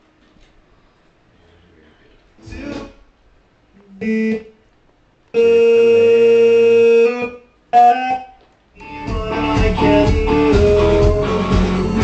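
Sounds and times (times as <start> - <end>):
keyboard chords: 5.4 - 12.0.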